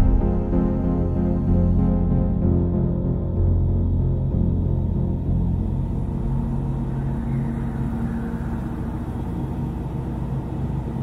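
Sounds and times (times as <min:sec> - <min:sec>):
sustained low tones: 0:00.0 - 0:10.6
deep steady rumble: 0:00.0 - 0:11.0.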